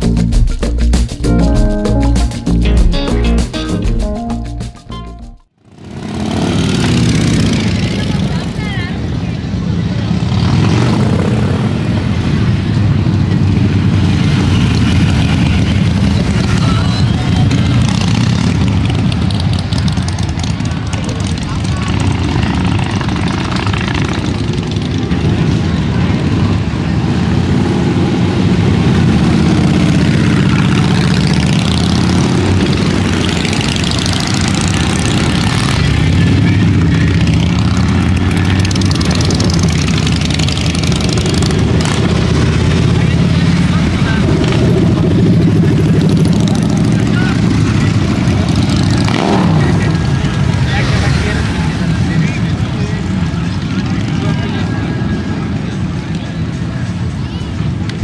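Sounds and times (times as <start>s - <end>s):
motorcycles riding past: 5.6s - 58.0s
crowd chatter: 6.9s - 12.0s, 14.7s - 28.1s, 32.0s - 58.0s.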